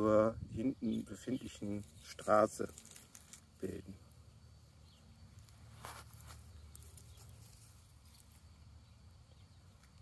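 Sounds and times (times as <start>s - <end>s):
chickens scratching and pecking: 1.2s - 3.8s, 5.3s - 8.8s.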